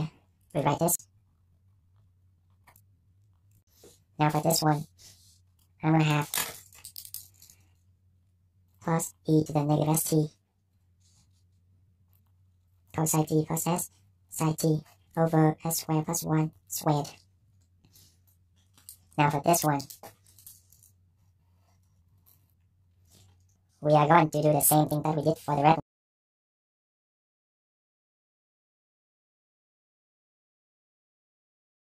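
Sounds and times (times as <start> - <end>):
low steady hum: 0.0 - 25.8
pens clicking and clinking on desk: 6.2 - 7.7, 18.6 - 21.0.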